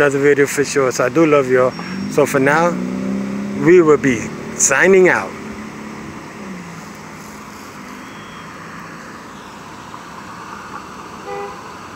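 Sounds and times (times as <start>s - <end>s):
street traffic noise: 0.0s - 11.9s
vehicle engine hum: 0.0s - 11.9s.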